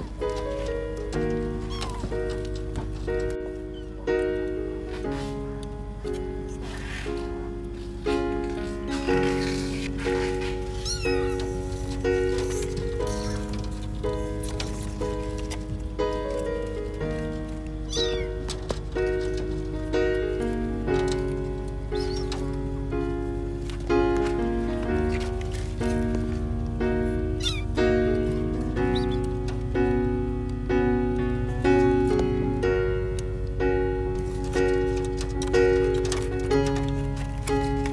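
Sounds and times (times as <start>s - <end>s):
background music chords: 0.0s - 37.9s
kitten mewing: 1.6s - 2.2s, 10.7s - 11.7s, 13.0s - 13.6s, 17.8s - 18.5s, 22.0s - 22.4s, 27.4s - 27.8s, 28.9s - 29.2s.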